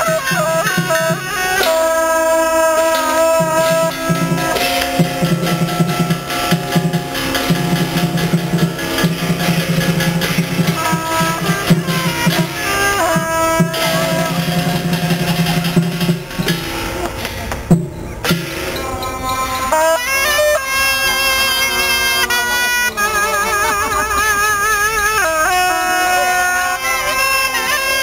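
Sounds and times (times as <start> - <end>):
clashing percussion strikes: 0.0 - 28.0
drums: 0.0 - 28.0
shrill shawm melody: 0.0 - 28.0.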